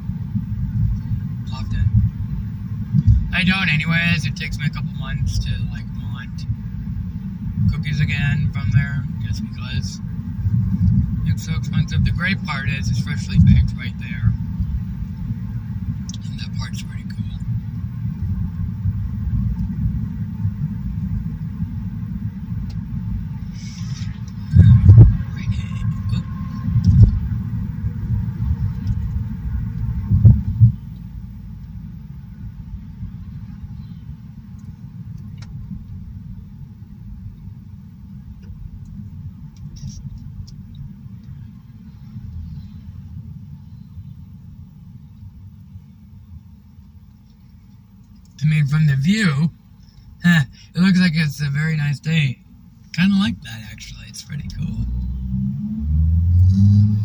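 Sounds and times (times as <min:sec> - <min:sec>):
car tyre and engine rumble: 0:00.0 - 0:57.0.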